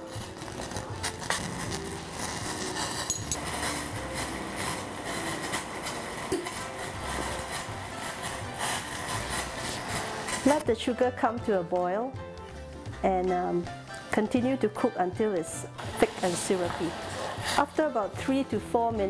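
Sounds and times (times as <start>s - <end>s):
gas stove hissing: 0.0s - 10.6s, 15.8s - 18.4s
small crackles: 0.0s - 10.6s
soft background music: 0.0s - 19.0s.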